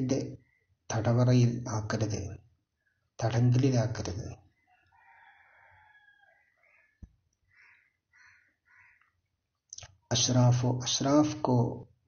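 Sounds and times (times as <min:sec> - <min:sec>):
distant bird call: 0:04.5 - 0:09.2.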